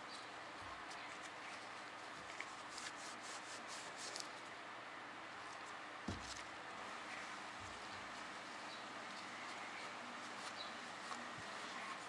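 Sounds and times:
cloth rag rubbing metal: 2.2 - 4.3.

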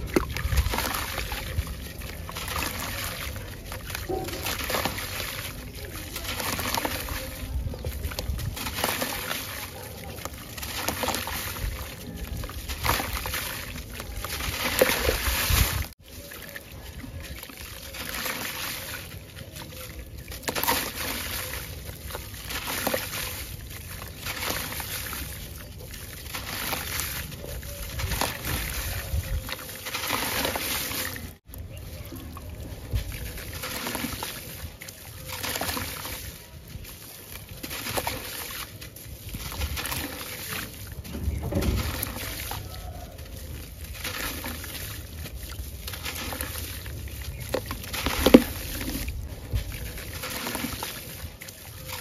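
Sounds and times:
gritty crunching of wet block: 0.0 - 52.0
water trickling and splashing: 0.0 - 52.0.

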